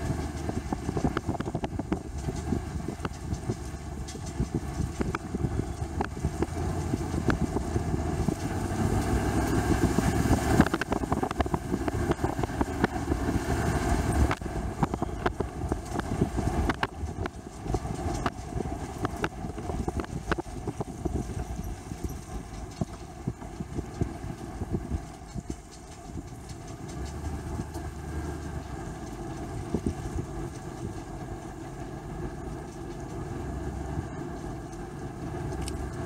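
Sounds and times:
sharp crackles: 0:00.0 - 0:36.0
vehicle engine idling: 0:00.0 - 0:36.0.

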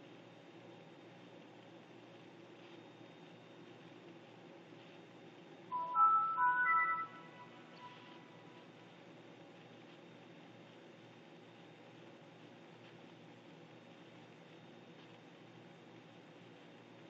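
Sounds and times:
computer startup chime: 0:05.7 - 0:08.6.

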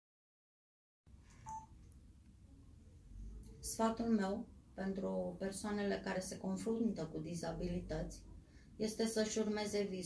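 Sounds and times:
short electronic beep: 0:01.4 - 0:01.8.

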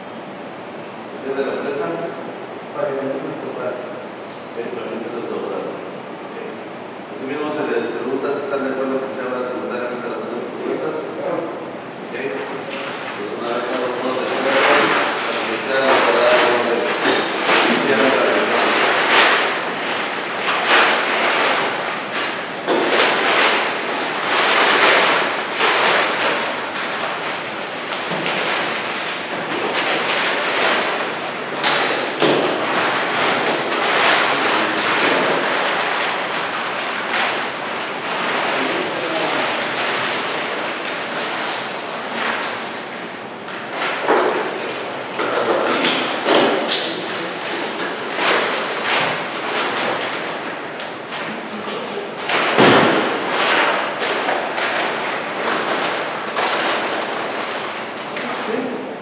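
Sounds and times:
papers rustling: 0:12.4 - 0:58.6.

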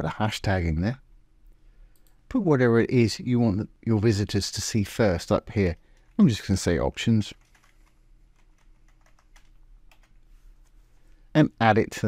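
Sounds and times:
computer keyboard typing: 0:05.6 - 0:06.2, 0:07.4 - 0:10.2.

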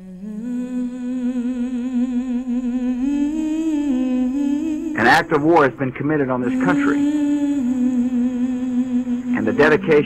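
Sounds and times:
person humming: 0:00.0 - 0:10.0.

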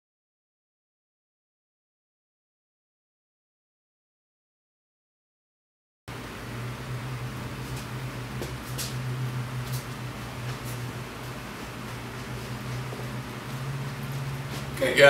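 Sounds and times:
low mechanical hum: 0:06.1 - 0:15.0.

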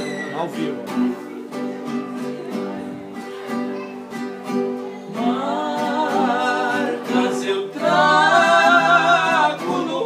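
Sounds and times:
acoustic guitars strumming: 0:00.0 - 0:10.0
two men singing: 0:05.2 - 0:10.0.

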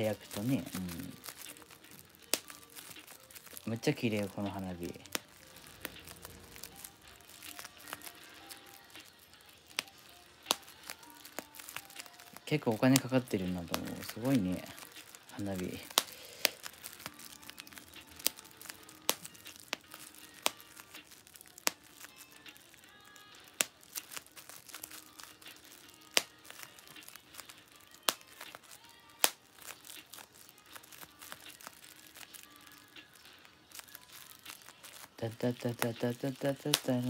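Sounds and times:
bubble wrap popping: 0:00.0 - 0:37.0
faint music: 0:00.0 - 0:37.0.

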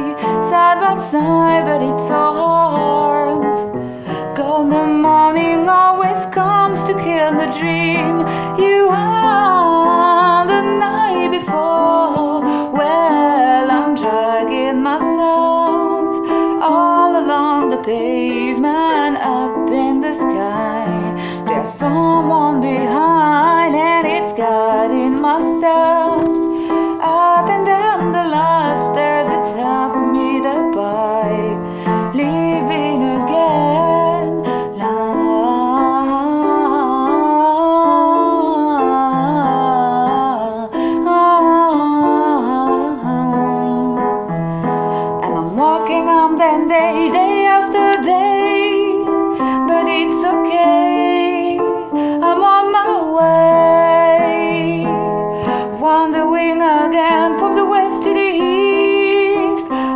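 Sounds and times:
piano chords: 0:00.0 - 0:59.9
woman singing pop ballad: 0:00.0 - 0:59.9.

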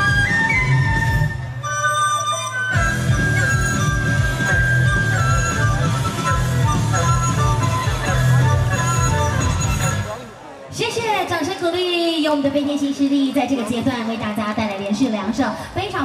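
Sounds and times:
bass and drums: 0:00.0 - 0:10.2
flutes and erhu melody: 0:00.0 - 0:10.4.

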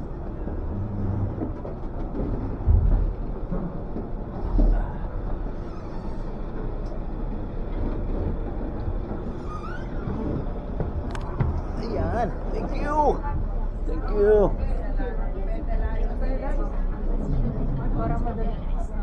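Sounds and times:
boat engine rumbling: 0:00.0 - 0:19.0.

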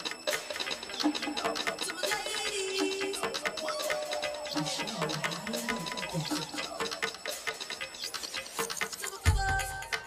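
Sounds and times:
dance music: 0:00.0 - 0:10.0.

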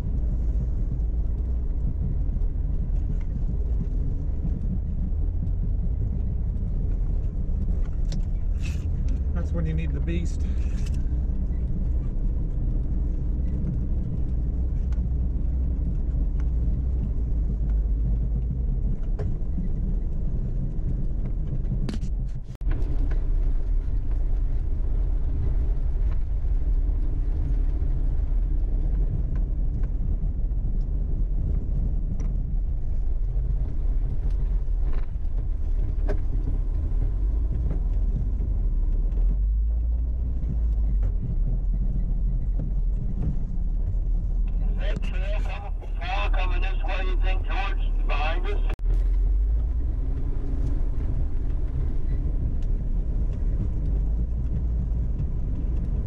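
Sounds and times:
engine and drivetrain rumble: 0:00.0 - 0:56.0.

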